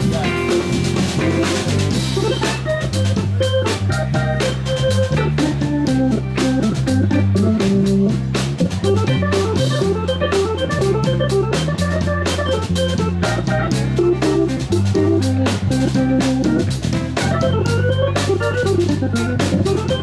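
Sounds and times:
live blues band playing: 0:00.0 - 0:20.0.

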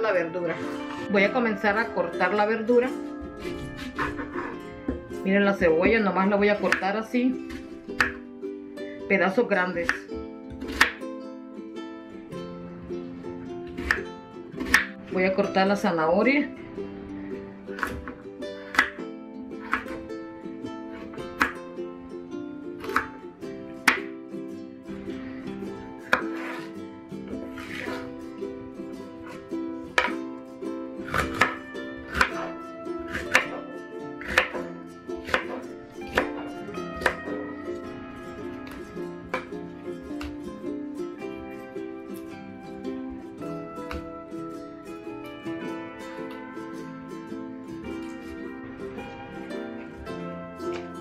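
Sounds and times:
background music: 0:00.0 - 0:51.0
knife chopping on wooden board: 0:03.4 - 0:05.0, 0:10.6 - 0:11.0, 0:14.6 - 0:14.9, 0:33.1 - 0:33.6, 0:34.2 - 0:34.6, 0:35.2 - 0:36.3.

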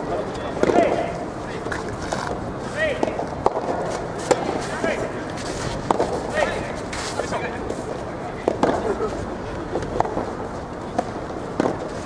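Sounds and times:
players shouting calls: 0:00.4 - 0:01.8, 0:02.6 - 0:03.3, 0:06.2 - 0:07.7
rackets hitting ball: 0:00.4 - 0:06.9, 0:08.4 - 0:09.1, 0:09.7 - 0:12.0.

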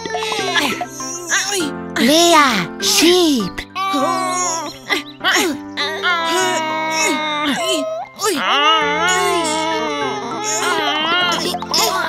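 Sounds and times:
background music with low notes: 0:00.0 - 0:12.0
cartoon voices whining and grunting: 0:00.0 - 0:12.0.

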